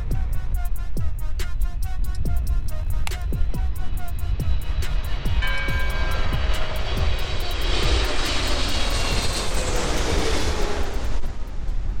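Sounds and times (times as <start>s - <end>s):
background music with steady beat: 0.0s - 12.0s
jet airliner flying overhead: 0.0s - 12.0s.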